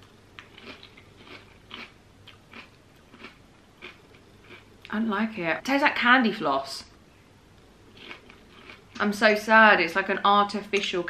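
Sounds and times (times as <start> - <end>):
person chewing crunchy cereal: 0.4 - 4.8, 7.9 - 9.0.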